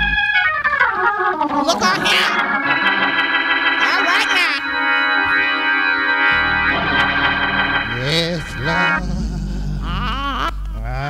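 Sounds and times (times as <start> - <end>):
church organ playing chords: 0.0 - 10.3
person's voice: 1.6 - 2.4, 7.9 - 11.0.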